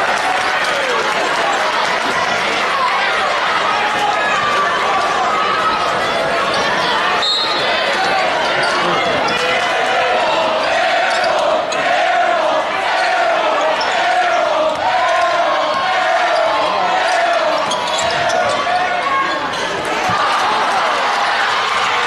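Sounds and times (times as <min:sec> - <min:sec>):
crowd voices: 0:00.0 - 0:22.0
sneakers squeaking on hardwood: 0:17.5 - 0:19.8.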